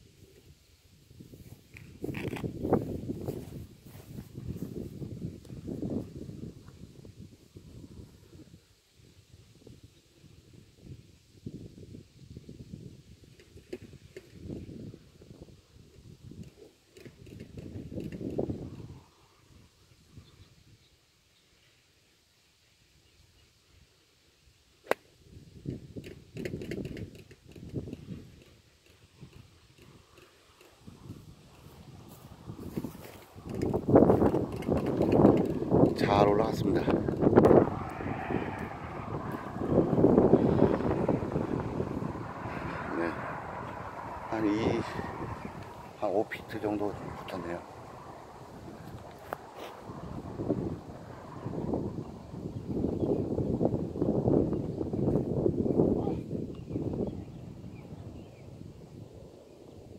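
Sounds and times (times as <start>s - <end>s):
wind gusting over microphone: 0.0s - 20.8s, 25.2s - 59.9s.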